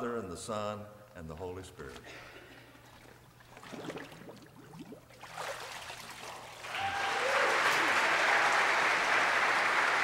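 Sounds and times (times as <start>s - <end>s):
water sloshing and splashing: 1.9s - 6.7s.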